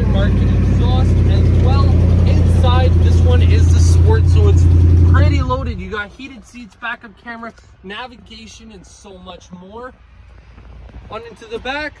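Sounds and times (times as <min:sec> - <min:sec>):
truck engine idling: 0:00.0 - 0:06.1.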